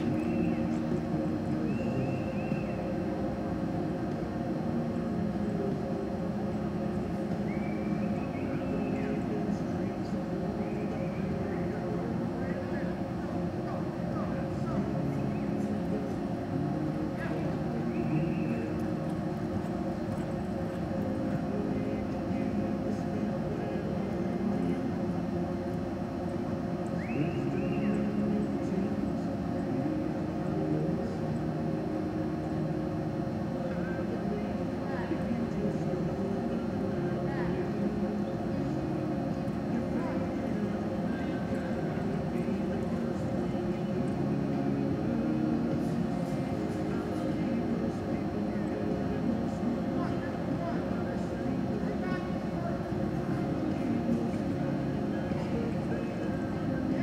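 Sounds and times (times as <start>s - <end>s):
murmur of voices: 0.0s - 57.0s
steady hum: 0.0s - 57.0s.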